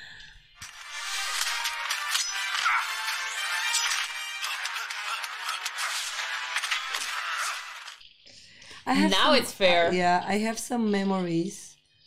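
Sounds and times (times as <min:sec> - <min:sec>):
film soundtrack music: 0:00.7 - 0:08.0.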